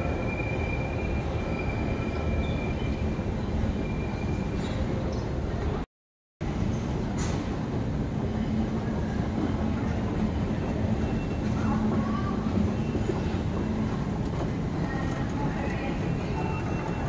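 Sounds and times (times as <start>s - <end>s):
station mechanical noise: 6.4s - 17.0s.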